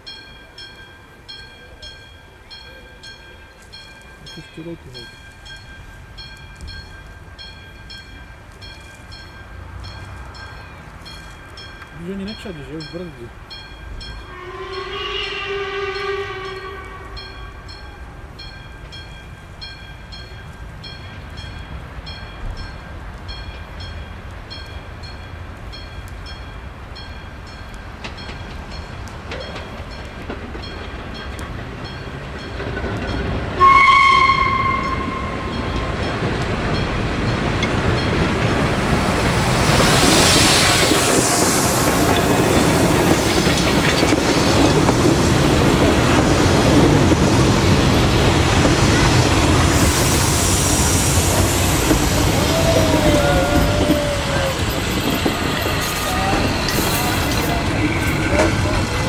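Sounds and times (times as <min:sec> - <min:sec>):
train rumble and wheel clatter: 0:00.0 - 0:59.0
steam locomotive whistle: 0:14.2 - 0:17.7, 0:33.6 - 0:35.7, 0:49.8 - 0:58.4.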